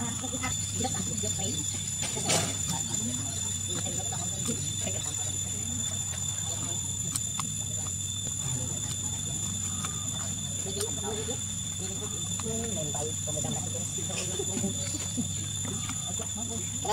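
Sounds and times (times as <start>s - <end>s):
high-pitched whine: 0.0s - 16.9s
steady low hum: 0.0s - 16.9s.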